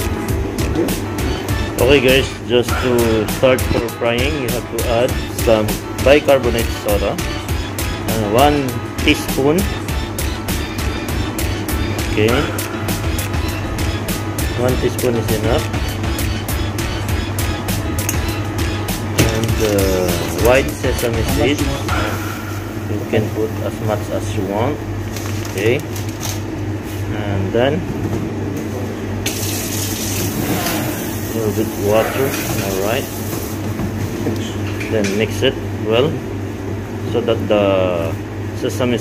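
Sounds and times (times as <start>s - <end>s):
background music with a beat: 0.0s - 22.0s
steady low hum: 0.0s - 39.0s.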